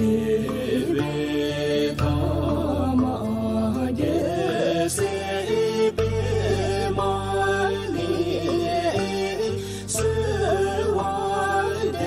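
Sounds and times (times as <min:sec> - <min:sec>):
low drone backing music: 0:00.0 - 0:12.0
person singing devotional chant: 0:00.0 - 0:12.0.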